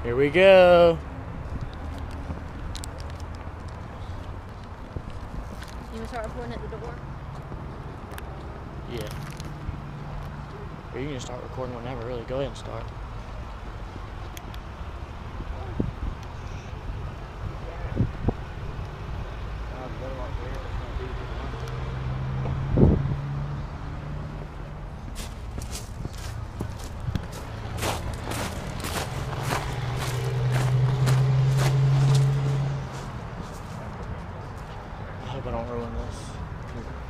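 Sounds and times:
low hum of traffic: 0.0 - 37.0
footsteps: 25.0 - 34.9.

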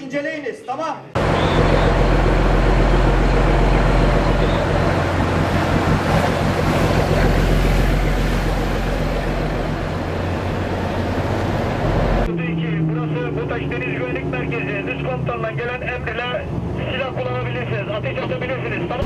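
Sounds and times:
rushing water: 1.2 - 12.3
boat engine drone: 1.2 - 19.0.

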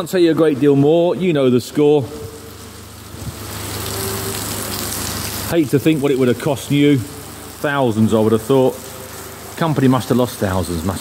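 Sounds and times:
low steady hum: 0.0 - 11.0
heavy rain hissing: 1.6 - 11.0.

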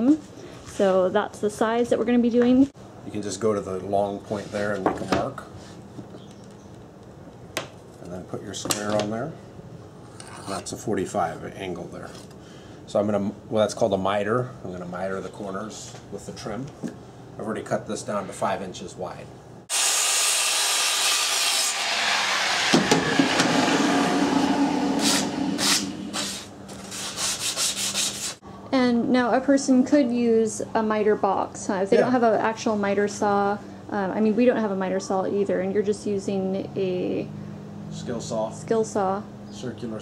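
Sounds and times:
circular saw cutting wood: 19.7 - 28.4.

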